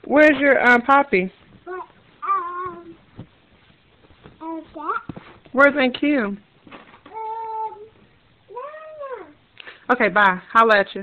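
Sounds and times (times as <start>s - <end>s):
toddler calling: 1.7s - 3.0s, 7.1s - 9.4s.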